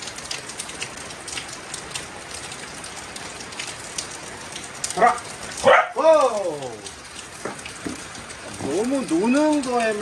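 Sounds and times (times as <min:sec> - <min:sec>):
steady rain on wet surface: 0:00.0 - 0:10.0.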